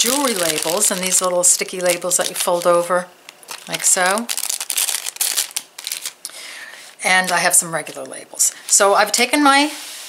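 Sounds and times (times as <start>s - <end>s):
plastic bag crinkling: 0.0s - 9.3s.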